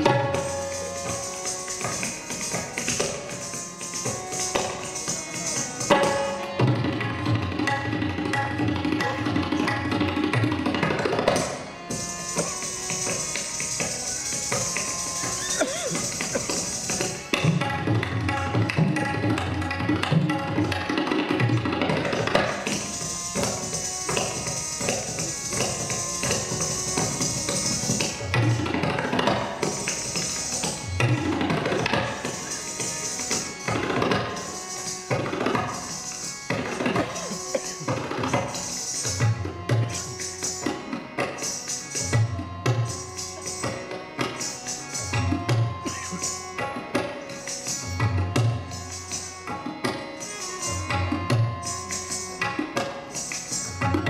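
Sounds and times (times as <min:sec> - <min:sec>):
melodic instrumental accompaniment: 0:00.0 - 0:07.8, 0:08.5 - 0:18.0, 0:22.1 - 0:54.0
tabla strokes: 0:00.0 - 0:54.0
ankle bells jingling: 0:11.9 - 0:17.3, 0:22.5 - 0:28.3, 0:31.6 - 0:40.7.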